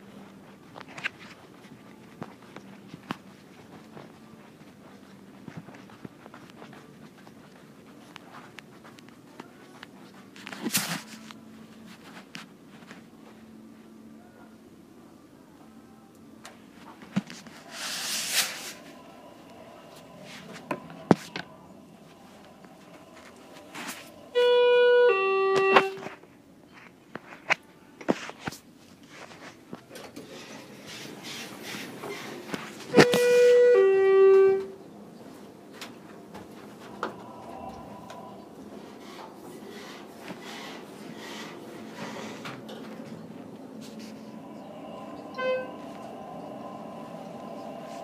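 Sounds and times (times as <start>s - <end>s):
elevator car hum: 18.4s - 26.2s, 30.0s - 48.0s
elevator two-tone chime: 24.3s - 26.0s, 45.0s - 46.7s
short electronic beep: 24.3s - 26.0s.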